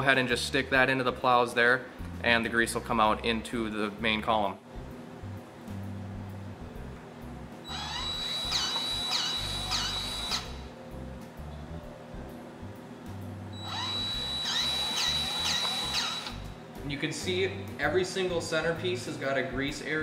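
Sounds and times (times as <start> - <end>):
grease gun motor whine: 7.7 - 10.7, 13.6 - 16.5.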